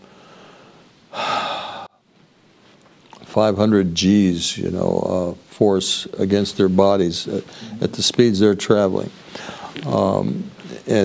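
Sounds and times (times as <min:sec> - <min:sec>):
man drawing breath: 0:00.0 - 0:02.0, 0:09.3 - 0:09.8.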